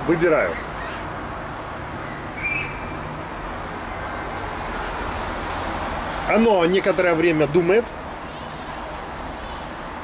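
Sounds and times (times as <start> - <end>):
distant traffic: 0.0 - 10.0.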